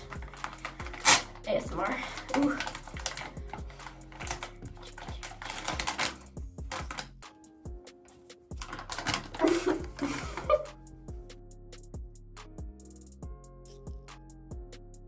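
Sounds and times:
plastic packet crinkling: 0.0s - 7.2s, 8.5s - 10.6s.

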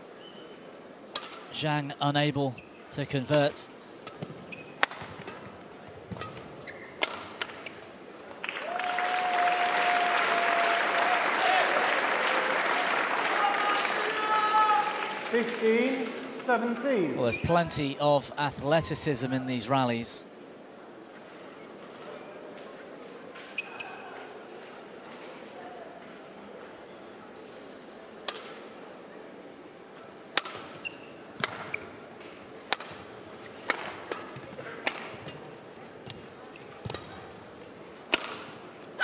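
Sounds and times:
shoes squeaking on court floor: 2.5s - 3.0s, 4.1s - 8.0s, 17.2s - 17.8s, 23.4s - 24.2s, 30.5s - 32.0s
rackets striking shuttlecock: 4.0s - 7.7s, 30.3s - 31.9s, 32.7s - 35.4s, 38.1s - 38.6s.

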